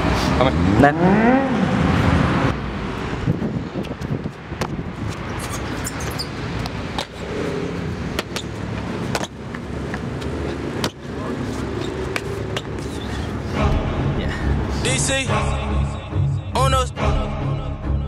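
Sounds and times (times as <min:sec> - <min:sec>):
road traffic noise: 0:00.0 - 0:16.1.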